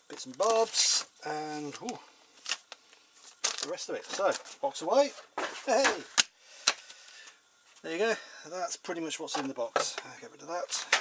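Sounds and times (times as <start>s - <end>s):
faint handling noise: 0.0s - 8.0s.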